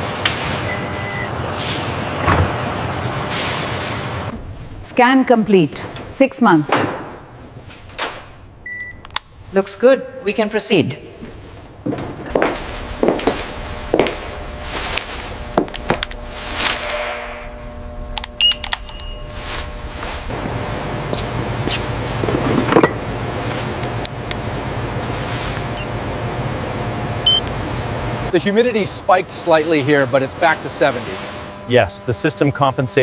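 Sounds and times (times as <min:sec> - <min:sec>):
low steady hum: 0:04.3 - 0:33.0.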